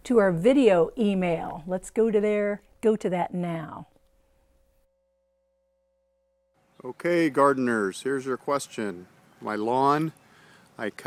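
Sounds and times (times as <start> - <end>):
man speaking: 6.8 - 10.2.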